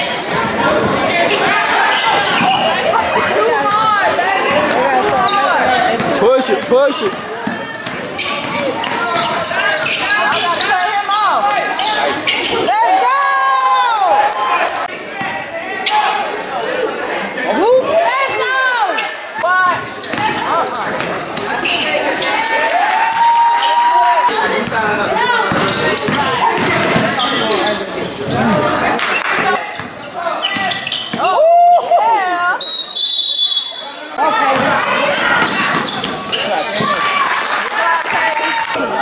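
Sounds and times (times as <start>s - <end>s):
voices calling out: 0.0s - 39.0s
ball bouncing on hardwood court: 25.4s - 27.2s.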